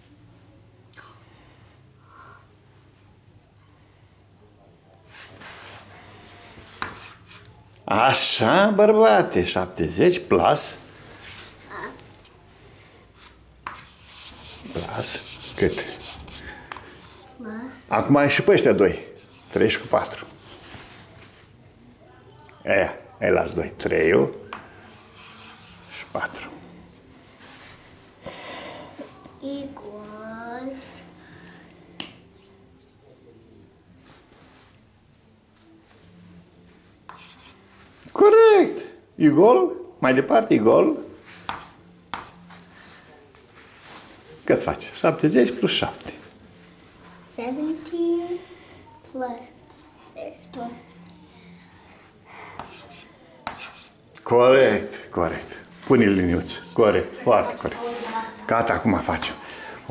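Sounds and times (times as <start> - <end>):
chalk scraping on blackboard: 6.6 - 7.5, 13.2 - 17.2, 25.0 - 26.4, 37.1 - 37.6, 52.6 - 54.0
chalk tap on board: 41.4 - 42.4, 52.6 - 53.9.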